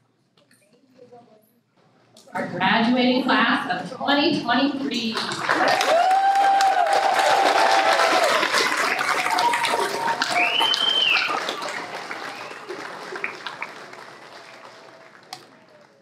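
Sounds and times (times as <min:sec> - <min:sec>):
audience applauding: 0:05.1 - 0:16.0
voices cheering: 0:05.4 - 0:16.0.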